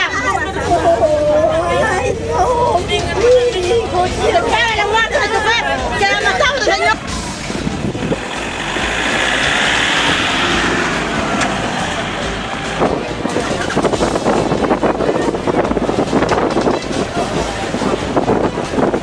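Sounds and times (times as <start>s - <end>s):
crowd voices: 0.0s - 19.0s
vehicle driving past: 7.0s - 14.2s.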